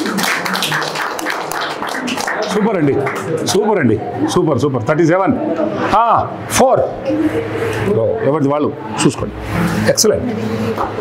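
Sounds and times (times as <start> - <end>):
people clapping: 0.0 - 3.9
faint voices: 0.0 - 11.0.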